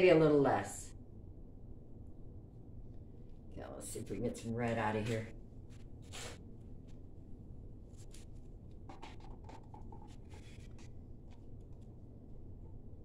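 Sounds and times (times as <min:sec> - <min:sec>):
low room hum: 0:00.0 - 0:13.0
paint cups scraping: 0:08.9 - 0:11.8.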